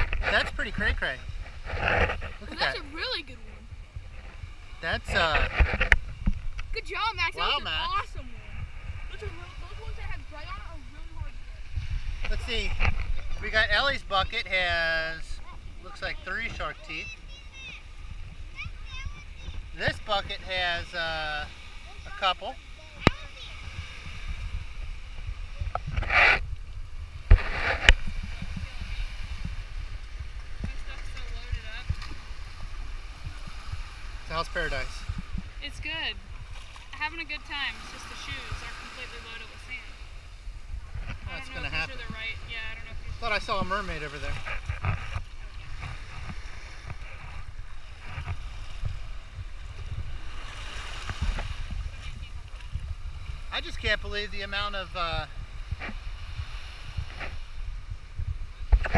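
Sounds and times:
small waves sloshing at shore: 0.0s - 58.9s
wind rumbling on microphone: 0.0s - 58.9s.

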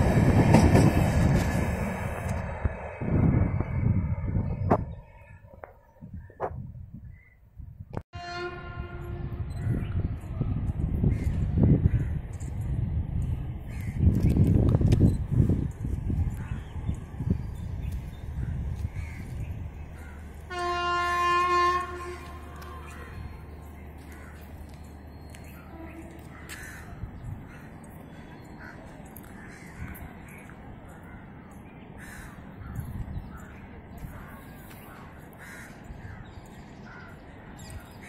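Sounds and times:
locomotive horn: 8.1s - 9.5s, 20.5s - 23.4s, 25.5s - 26.3s.

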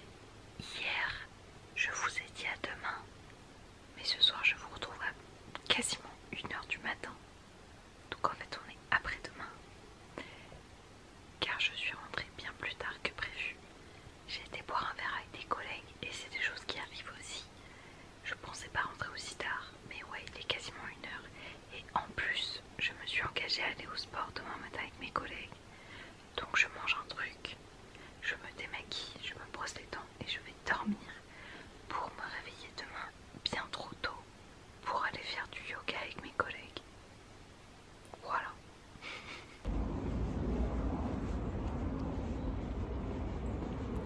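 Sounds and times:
woman whispering: 0.6s - 3.1s, 4.0s - 7.2s, 8.1s - 9.6s, 11.4s - 13.6s, 14.3s - 17.6s, 18.2s - 25.6s, 26.3s - 27.6s, 28.2s - 31.3s, 31.9s - 36.9s, 38.2s - 38.6s.

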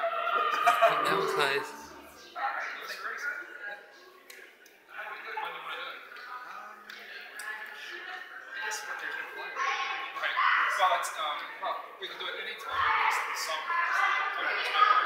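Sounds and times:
quiet talking voices: 0.4s - 15.0s.

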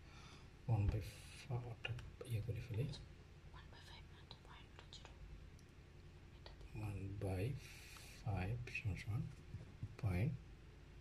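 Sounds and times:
man speaking quietly: 0.7s - 3.1s, 6.5s - 10.4s
faint light ticks: 4.3s - 5.7s.

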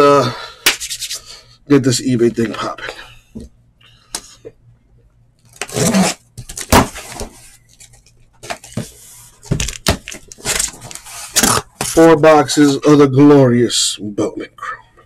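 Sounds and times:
cardboard boxes rustling and scraping: 5.6s - 12.0s.

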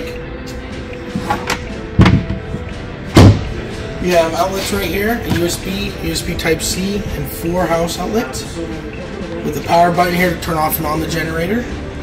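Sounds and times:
background music: 0.0s - 12.0s
plastic panel thuds: 1.5s - 2.6s, 3.2s - 3.5s.

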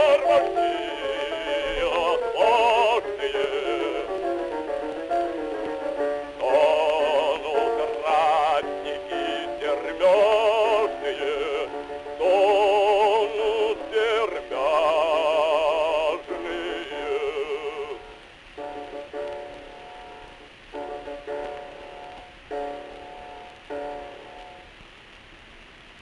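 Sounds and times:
man singing with wide vibrato: 0.0s - 4.8s, 6.1s - 18.2s
piano accompaniment: 0.0s - 24.9s.

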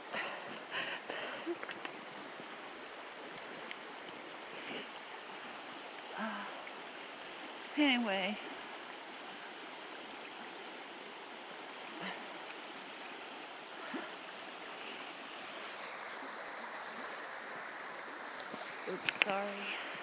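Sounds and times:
river rushing over riffle: 11.4s - 20.0s.

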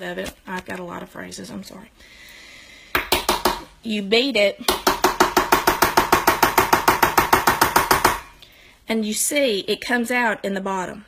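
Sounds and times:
powder jar being banged: 4.7s - 8.4s.

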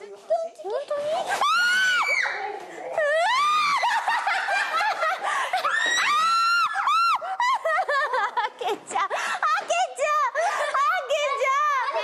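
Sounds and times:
women screaming: 1.3s - 4.2s, 5.5s - 7.6s.

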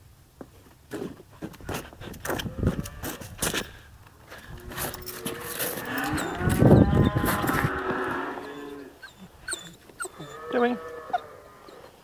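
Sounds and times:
cow mooing: 4.7s - 9.0s, 10.1s - 11.8s.

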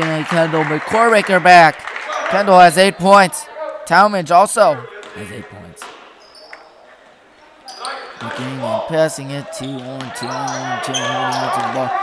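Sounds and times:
voices: 0.0s - 6.0s, 6.7s - 12.0s
high squeaks: 6.2s - 8.3s, 9.6s - 11.7s.

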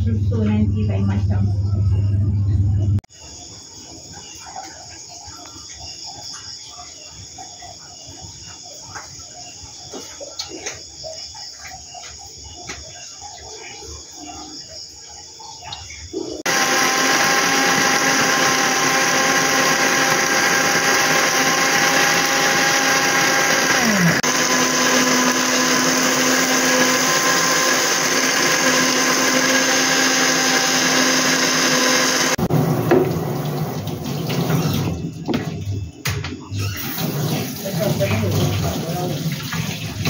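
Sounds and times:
blender running: 16.4s - 32.5s.

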